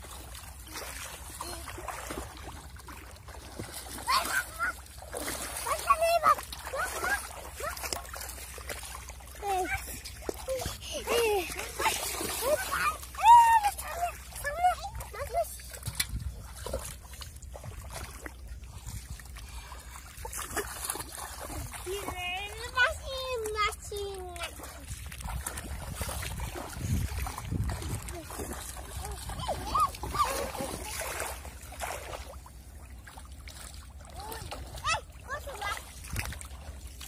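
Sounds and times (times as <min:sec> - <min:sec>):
water splashing: 0:00.0 - 0:37.0
children crying out: 0:29.4 - 0:30.9.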